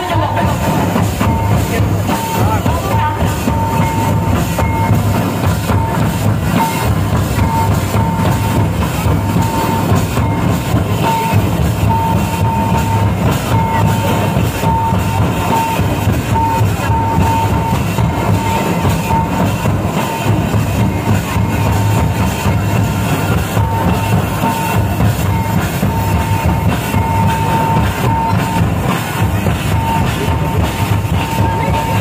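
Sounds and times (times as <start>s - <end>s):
large drums beating: 0.0s - 32.0s.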